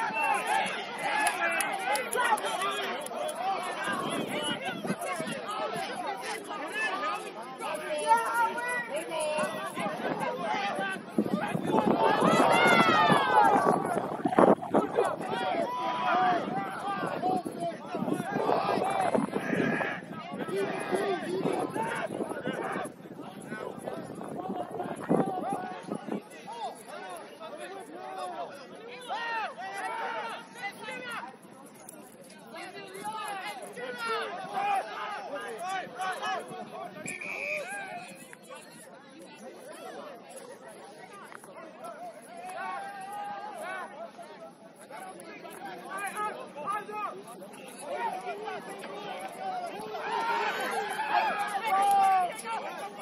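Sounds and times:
people shouting: 0.0 - 31.3, 32.6 - 38.2, 47.8 - 53.0.

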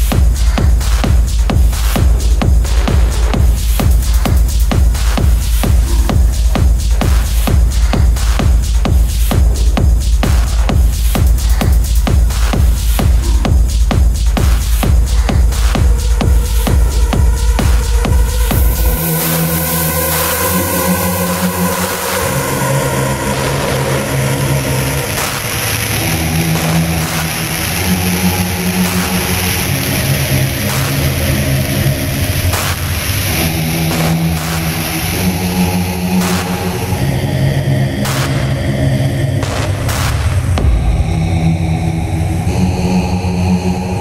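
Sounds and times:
deep rumble: 0.0 - 44.0
held bass synth notes: 0.0 - 44.0.

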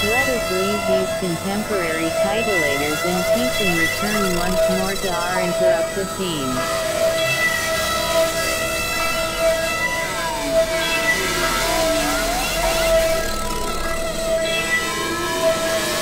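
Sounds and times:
gliding synthesizer tones: 0.0 - 16.0
synthesizer held drone tones: 0.0 - 16.0.

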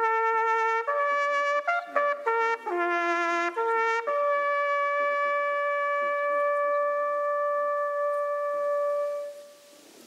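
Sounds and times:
bugle call with long held note: 0.0 - 9.6.

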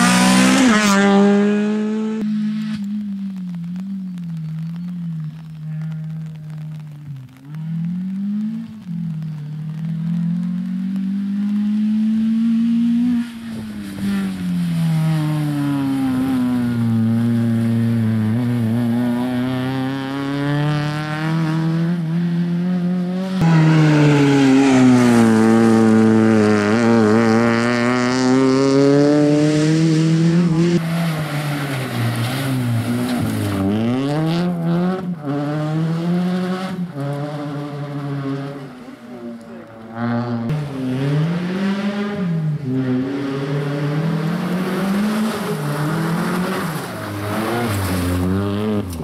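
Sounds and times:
rally car engine revving: 0.0 - 49.0.

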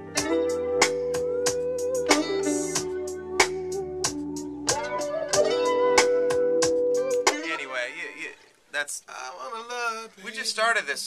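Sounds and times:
electric guitar melody: 0.0 - 7.6
smooth jazz groove: 0.0 - 7.6.

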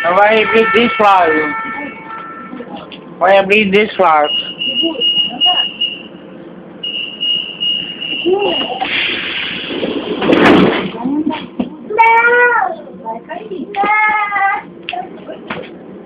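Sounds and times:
high rapid door warning beeps: 4.2 - 8.8
loud rush of noise: 8.7 - 11.0.

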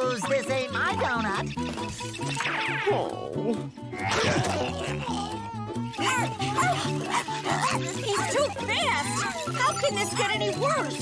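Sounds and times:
cartoon creature yipping and barking: 3.9 - 10.0.

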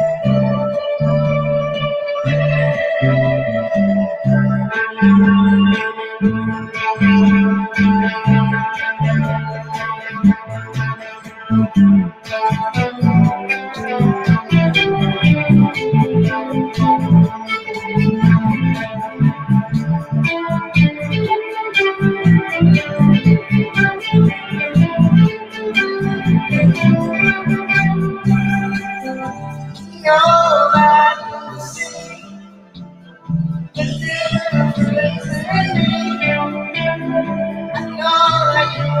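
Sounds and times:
rock band playing live: 4.8 - 29.8.

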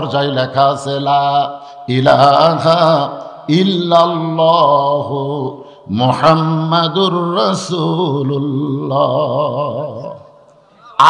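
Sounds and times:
man chanting melodic sermon: 0.0 - 10.2.

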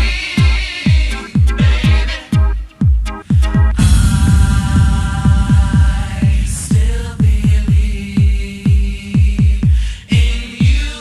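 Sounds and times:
kick drum beat: 0.0 - 10.9.

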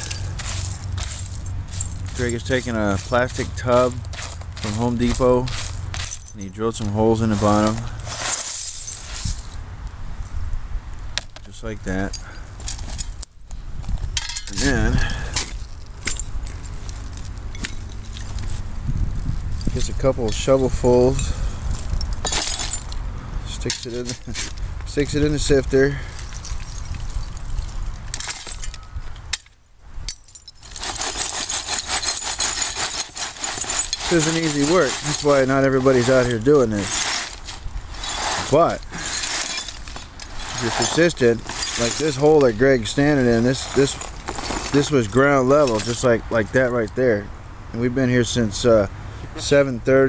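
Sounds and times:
dirt rattling in plastic sifter: 0.0 - 5.7
shovel in loose dirt: 0.0 - 6.2, 6.8 - 9.5, 30.7 - 45.1
dirt and glass rattling in sifter: 0.0 - 9.6, 14.1 - 18.6, 19.6 - 23.0, 23.6 - 28.9, 30.1 - 46.5
steady low rumble: 0.0 - 11.2, 12.1 - 29.1.

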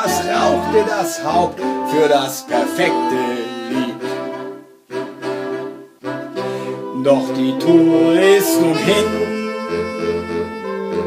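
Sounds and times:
saxophone quartet chords: 0.0 - 11.0.

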